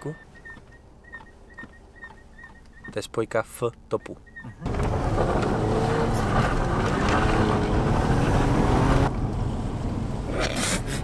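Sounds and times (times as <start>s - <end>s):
car engine under heavy throttle: 4.6s - 11.0s.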